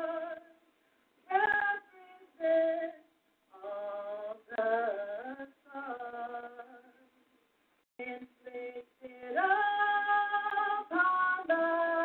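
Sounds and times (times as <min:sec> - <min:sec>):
woman singing slow song: 0:00.0 - 0:00.6, 0:01.3 - 0:07.1, 0:08.0 - 0:12.0.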